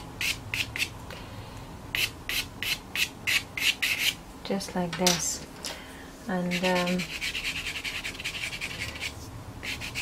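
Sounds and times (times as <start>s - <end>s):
pastel stick scratching paper: 6.5s - 10.0s.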